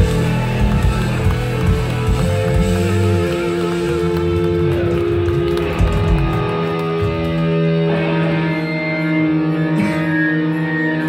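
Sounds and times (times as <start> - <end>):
electric guitars sustained notes: 0.0 - 11.0.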